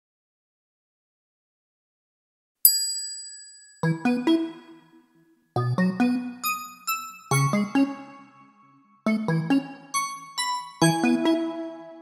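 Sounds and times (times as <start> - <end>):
keyboard music jingle: 3.8 - 12.0.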